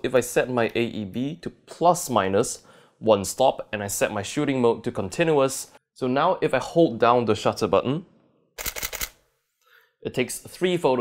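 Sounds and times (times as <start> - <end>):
camera shutter clicks: 8.6 - 9.2.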